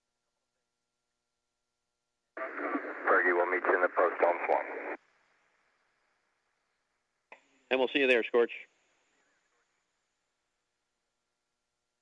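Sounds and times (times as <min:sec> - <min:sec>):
voice over tinny radio: 0:02.4 - 0:05.0.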